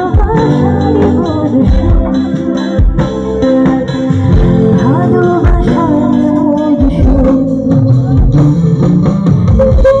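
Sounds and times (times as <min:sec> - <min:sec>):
drum kit: 0:00.0 - 0:10.0
guitar lines: 0:00.0 - 0:10.0
live band playing through speakers: 0:00.0 - 0:10.0.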